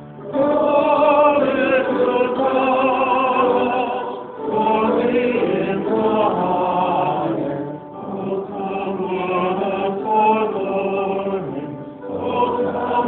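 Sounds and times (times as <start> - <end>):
choir chanting: 0.0 - 13.0.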